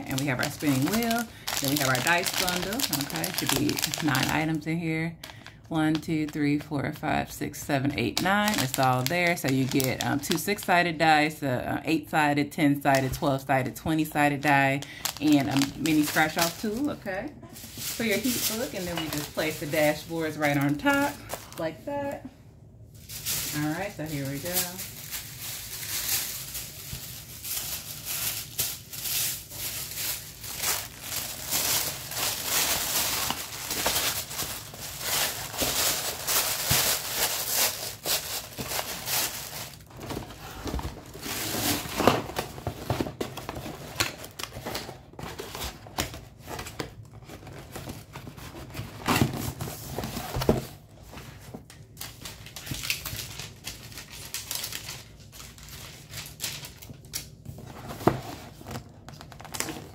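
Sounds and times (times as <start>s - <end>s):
tissue paper rustling: 0.0s - 4.4s, 8.2s - 10.4s, 15.0s - 22.1s, 22.9s - 59.9s.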